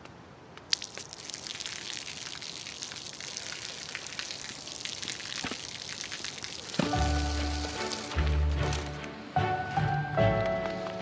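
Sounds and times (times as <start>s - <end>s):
water splashing onto pavement: 0.7s - 8.8s
music: 6.8s - 11.0s.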